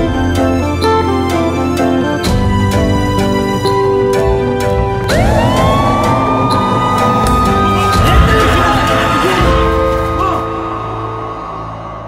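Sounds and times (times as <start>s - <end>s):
background music: 0.0s - 12.0s
siren winding up: 5.0s - 9.2s.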